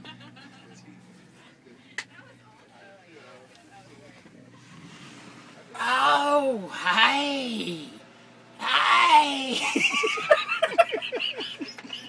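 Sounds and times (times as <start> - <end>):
steady low bus hum: 0.0 - 12.0
faint indistinct voices: 0.3 - 6.6.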